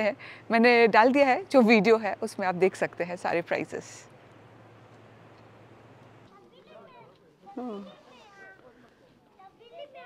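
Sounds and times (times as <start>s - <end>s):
crowd chatter: 6.3s - 10.0s.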